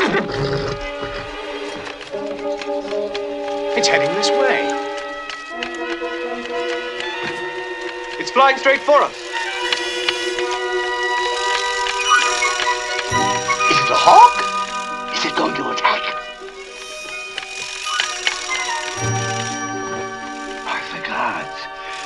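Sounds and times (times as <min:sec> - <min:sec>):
orchestral score: 0:00.0 - 0:22.0
mechanical owl chirps: 0:09.1 - 0:15.3, 0:16.2 - 0:20.9.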